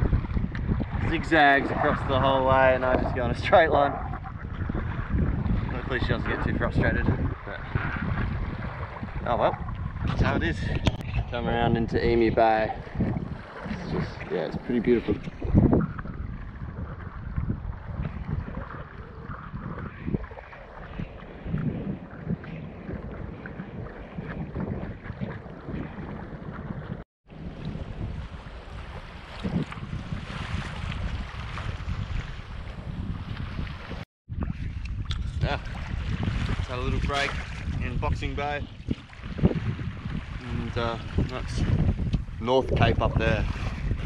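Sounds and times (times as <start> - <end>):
waves splashing against hull: 0.0 - 44.0
wind buffeting microphone: 0.0 - 44.0.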